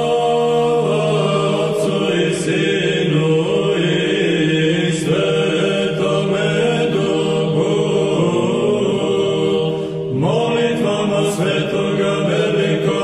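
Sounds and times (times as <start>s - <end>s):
choir chanting a hymn: 0.0s - 13.0s.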